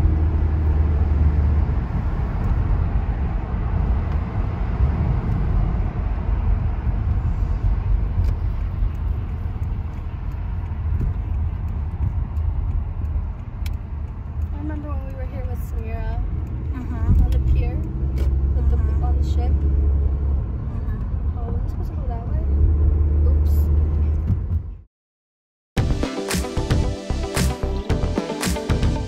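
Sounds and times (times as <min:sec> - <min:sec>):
car engine rumble: 0:00.0 - 0:24.9
tyre road noise: 0:00.0 - 0:24.9.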